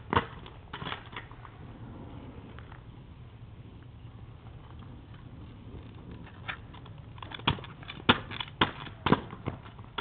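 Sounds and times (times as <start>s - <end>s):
kick scooter hops clattering: 0.0s - 1.4s, 5.8s - 10.0s.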